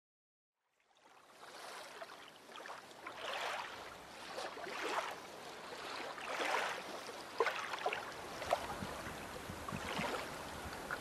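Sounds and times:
sea waves washing: 0:01.3 - 0:11.0.

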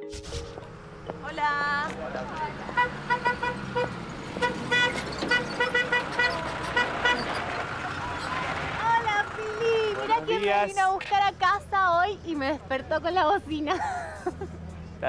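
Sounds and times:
van horn short toots: 0:02.6 - 0:07.6.

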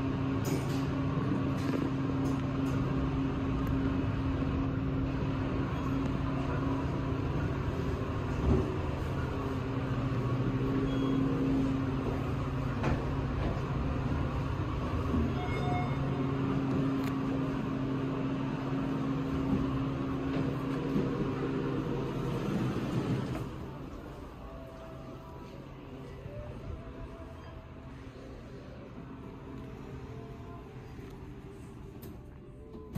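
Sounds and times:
elevator hum: 0:00.0 - 0:32.9.

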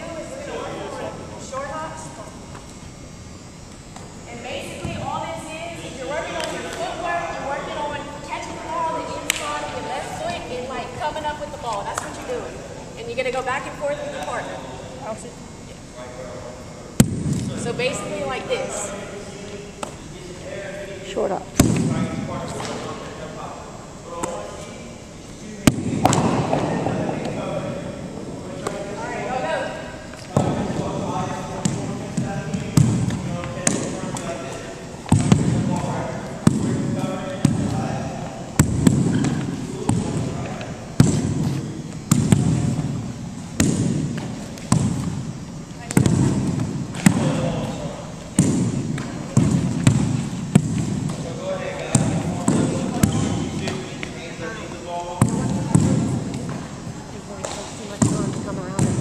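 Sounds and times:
chatter of many voices: 0:00.0 - 0:59.0
balls smacking into gloves: 0:25.7 - 0:27.4, 0:38.6 - 0:42.9, 0:43.6 - 0:45.2, 0:48.4 - 0:53.8.

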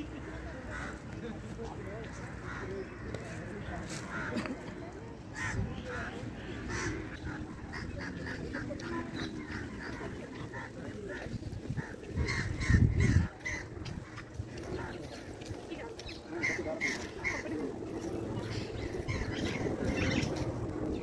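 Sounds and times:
distant voices: 0:00.0 - 0:21.0
birds calling: 0:05.3 - 0:21.0.

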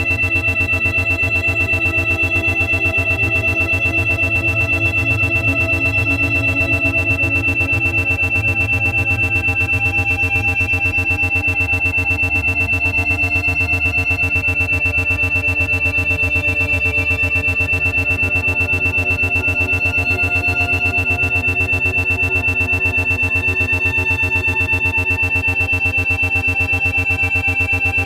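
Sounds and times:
ambient synthesizer pad: 0:00.0 - 0:28.0
pulsing tone: 0:00.0 - 0:28.0
steady high tone: 0:00.0 - 0:28.0.

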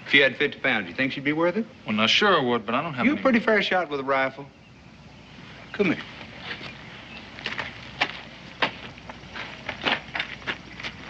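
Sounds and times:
footsteps crunching on dirt: 0:05.5 - 0:11.0.

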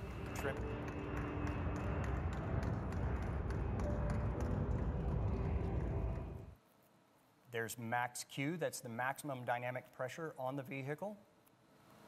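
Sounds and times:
jet engines roaring: 0:00.0 - 0:06.5.

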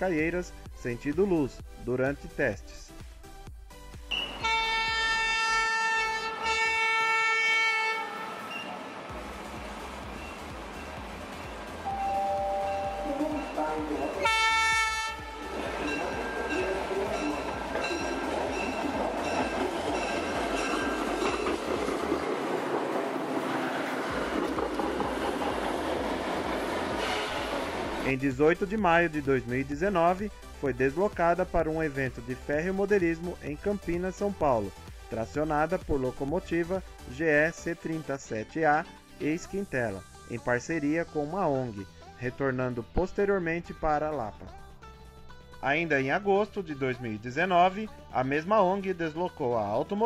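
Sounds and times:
train horn blasts: 0:04.1 - 0:09.1, 0:11.8 - 0:20.7, 0:26.9 - 0:28.0
railcar rumble: 0:04.1 - 0:28.2
wheel clatter on track: 0:24.0 - 0:26.9.

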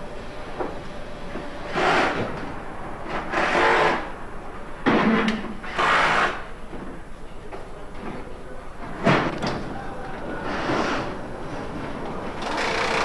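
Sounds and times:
steady workshop hum: 0:00.0 - 0:13.0.

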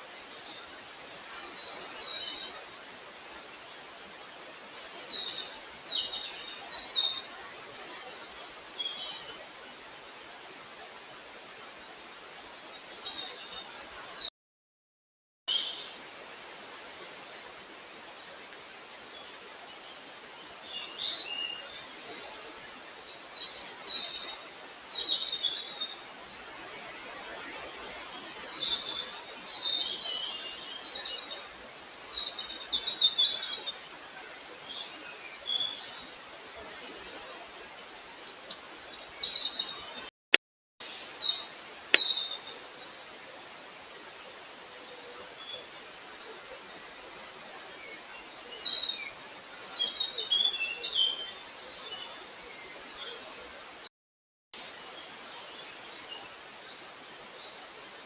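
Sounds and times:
background hiss: 0:00.0 - 0:14.3, 0:15.5 - 0:40.1, 0:40.8 - 0:53.9, 0:54.6 - 0:58.0
songbirds chirping: 0:00.0 - 0:14.3, 0:15.5 - 0:40.1, 0:41.1 - 0:53.9, 0:54.6 - 0:58.0.

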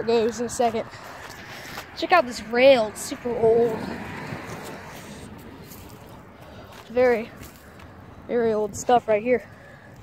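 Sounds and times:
low outdoor background noise: 0:00.0 - 0:10.0.

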